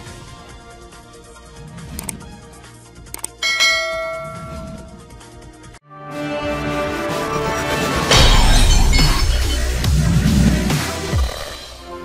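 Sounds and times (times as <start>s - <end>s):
mouse clicks: 3.1s - 3.4s
bright bell chime: 3.4s - 4.9s.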